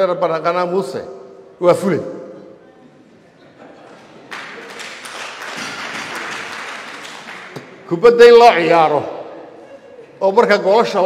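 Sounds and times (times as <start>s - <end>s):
audience applauding: 4.1s - 7.8s.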